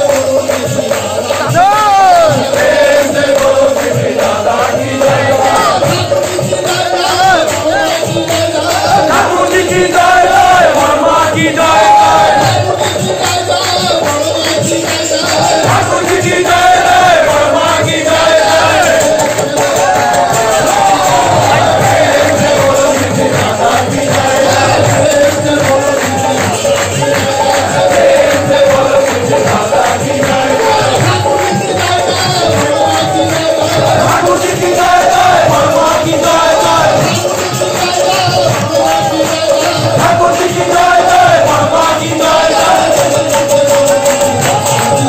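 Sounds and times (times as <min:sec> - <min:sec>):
congregation singing: 0:00.0 - 0:45.0
percussion rhythm: 0:00.0 - 0:45.0.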